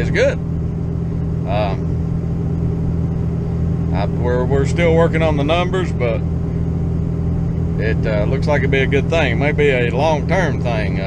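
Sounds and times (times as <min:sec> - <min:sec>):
vehicle engine rumble inside cab: 0:00.0 - 0:11.0.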